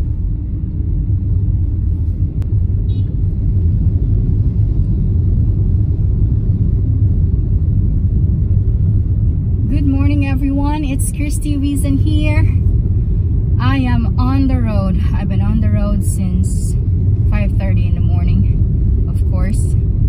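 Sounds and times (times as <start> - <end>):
car engine and road noise: 0.0 - 20.0
woman speaking: 9.6 - 12.6, 13.6 - 18.5, 19.1 - 19.8.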